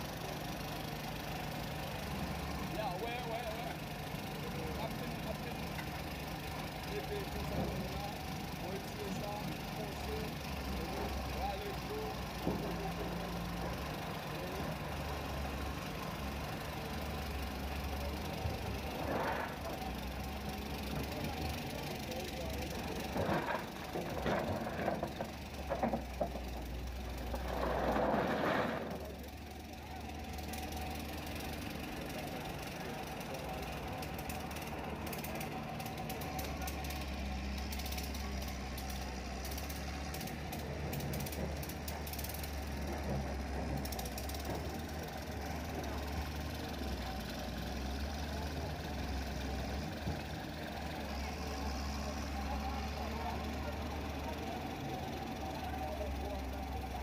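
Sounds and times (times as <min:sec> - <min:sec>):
excavator diesel engine running: 0:00.0 - 0:57.0.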